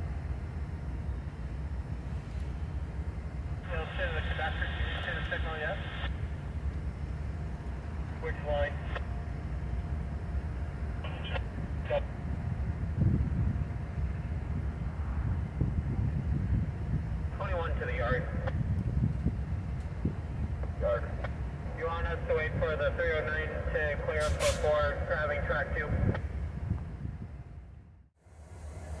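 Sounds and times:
diesel locomotive rumbling: 0.0s - 29.0s
radio chatter: 3.6s - 6.2s, 8.1s - 9.1s, 11.0s - 12.1s, 17.3s - 18.6s, 20.6s - 26.2s.

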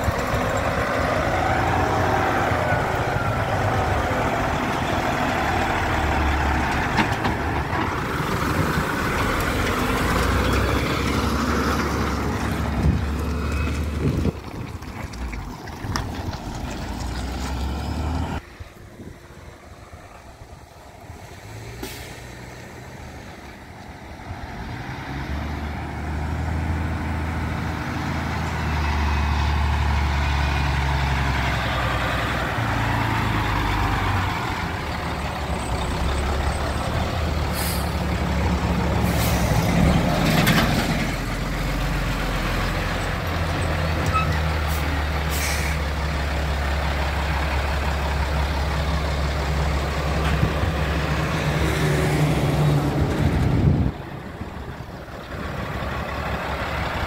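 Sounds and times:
truck diesel engine: 0.0s - 57.0s
air brake hisses: 21.8s - 22.3s, 37.5s - 38.0s, 44.7s - 45.8s.

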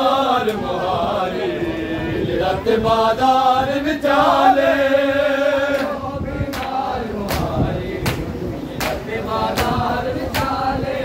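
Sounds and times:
men chanting in unison: 0.0s - 11.0s
people striking their chests: 6.5s - 10.6s.

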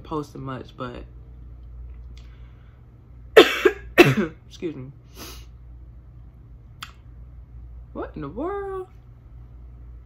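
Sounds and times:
woman coughing: 3.4s - 4.4s.

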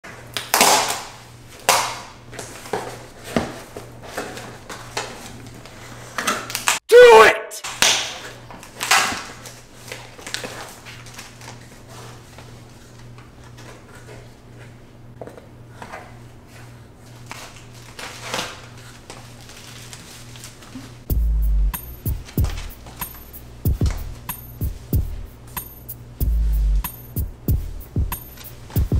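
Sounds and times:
cardboard packaging rustling: 17.1s - 21.0s.

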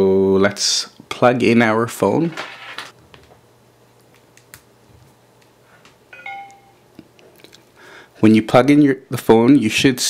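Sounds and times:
two-note device-connect chime: 6.1s - 6.8s.

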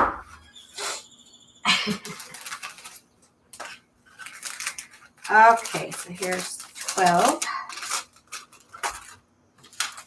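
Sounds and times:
plastic bag crinkling: 1.7s - 10.0s.

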